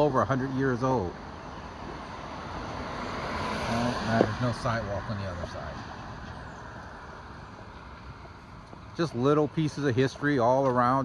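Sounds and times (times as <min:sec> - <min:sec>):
car passing by: 0:01.3 - 0:10.2.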